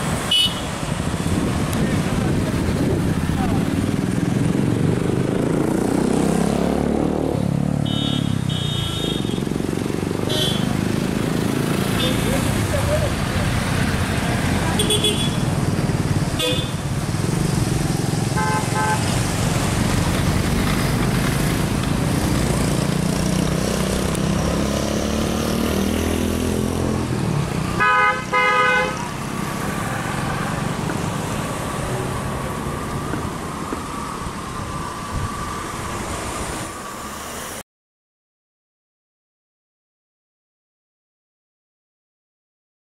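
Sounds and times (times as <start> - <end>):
road noise: 0.0 - 37.6
traffic engines: 0.0 - 37.6.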